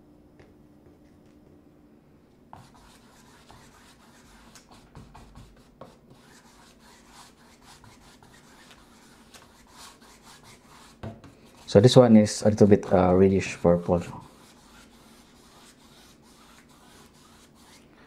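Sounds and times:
paintbrush rubbing on canvas: 2.6s - 12.0s, 14.2s - 17.8s.

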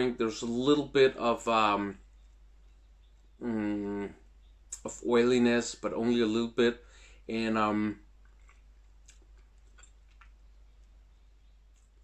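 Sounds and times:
low steady hum: 0.0s - 12.0s
faint small clicks: 8.2s - 11.0s, 11.7s - 12.0s.

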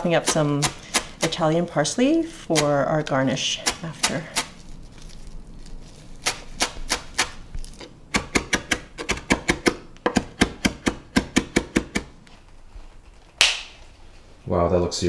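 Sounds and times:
knife chopping on wooden board: 6.2s - 12.1s.

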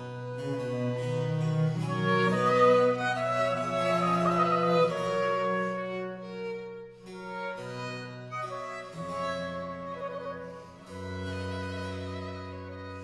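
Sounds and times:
cello and harpsichord bass: 0.0s - 13.0s
oboe: 0.0s - 13.0s
violin: 0.0s - 13.0s.

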